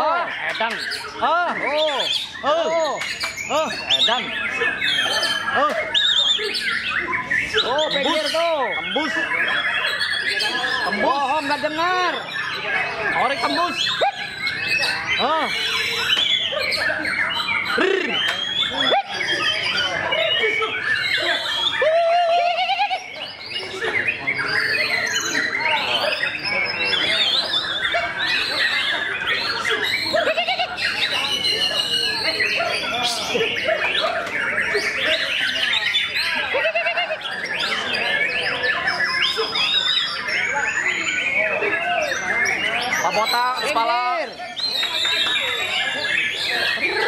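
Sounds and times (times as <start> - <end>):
bird singing whistles and trills: 0.6 - 36.5, 37.3 - 47.0.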